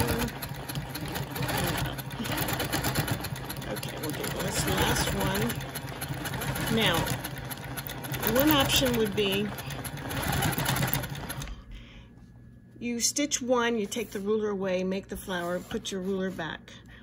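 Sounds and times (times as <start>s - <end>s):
sewing machine needle patter: 0.0s - 11.5s
low motor hum: 0.0s - 12.1s.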